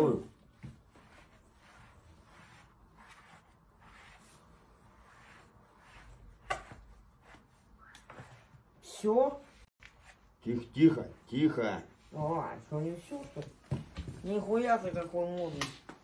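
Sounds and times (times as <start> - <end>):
hands rubbing on suede boot: 0.8 - 7.6.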